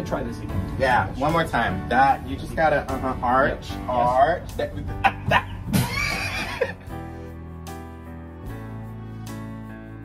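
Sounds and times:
background music with held chords: 0.0s - 10.0s
high-pitched laugh: 5.0s - 6.9s.

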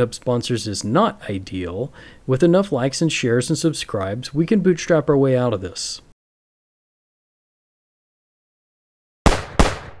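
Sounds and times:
gunshot sound effects: 9.2s - 10.0s.

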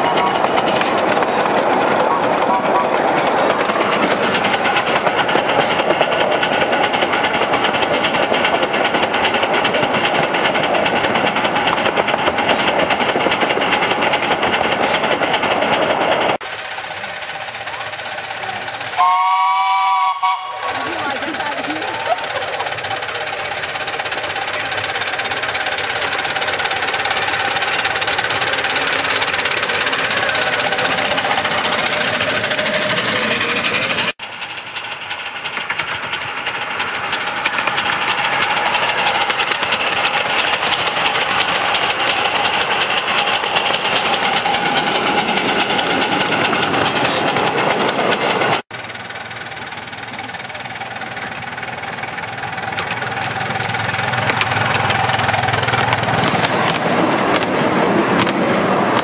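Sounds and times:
miniature steam locomotives running: 0.0s - 59.0s.

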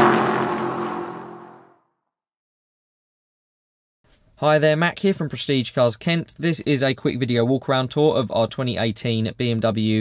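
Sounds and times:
falling tones: 0.0s - 1.7s
whoosh: 0.0s - 1.8s.

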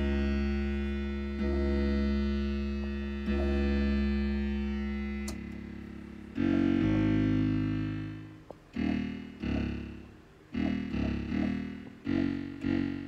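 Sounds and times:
deep synthesizer bass notes: 0.0s - 13.0s.

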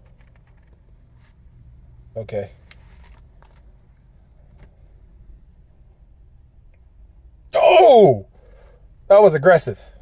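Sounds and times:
faint low rumble: 0.0s - 7.6s.

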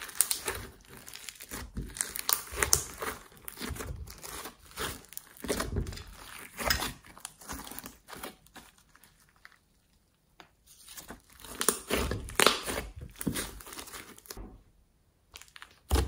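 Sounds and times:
slime squished by hand: 0.0s - 9.7s, 10.5s - 14.4s.

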